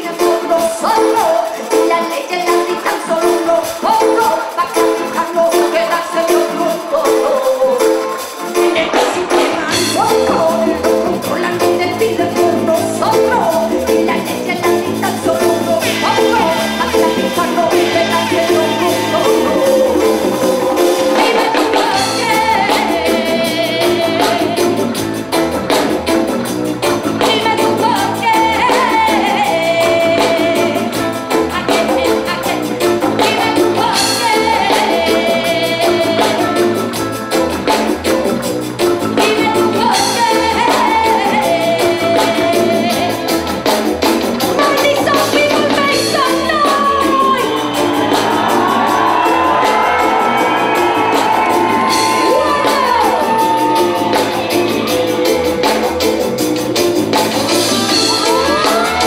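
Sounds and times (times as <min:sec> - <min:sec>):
drums beat: 0:00.0 - 0:59.0
guitar: 0:00.0 - 0:59.0
keyboards: 0:00.0 - 0:59.0
live band playing: 0:00.0 - 0:59.0
person singing: 0:00.0 - 0:59.0.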